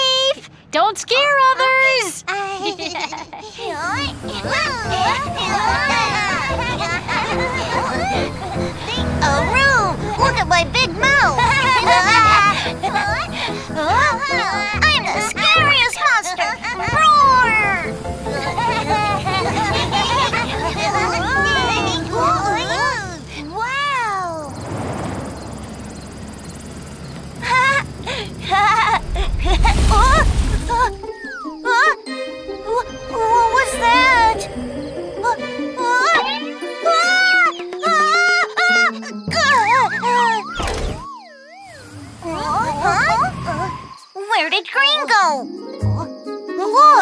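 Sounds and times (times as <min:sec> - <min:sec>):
background music: 0:03.9 - 0:23.3, 0:30.6 - 0:40.9, 0:45.1 - 0:47.0
soft rushing noise: 0:28.4 - 0:31.2
high cartoon voices calling out: 0:32.5 - 0:40.5.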